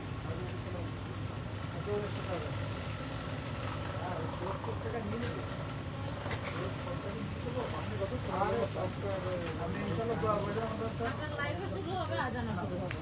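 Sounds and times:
faint indistinct voices: 0.2s - 13.0s.

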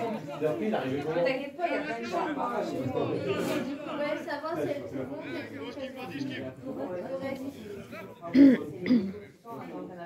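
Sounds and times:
person coughing: 8.3s - 9.2s.

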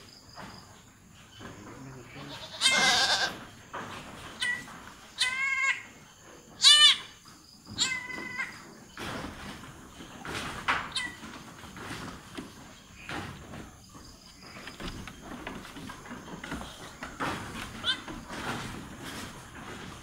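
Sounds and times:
goat bleating: 2.0s - 3.4s.

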